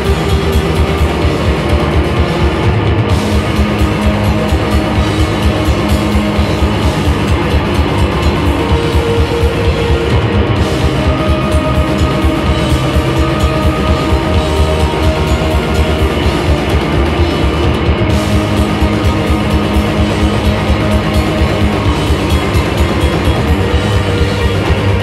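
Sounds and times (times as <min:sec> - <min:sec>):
bass guitar: 0:00.0 - 0:25.0
distorted electric guitar: 0:00.0 - 0:25.0
drum kit steady beat: 0:00.0 - 0:25.0.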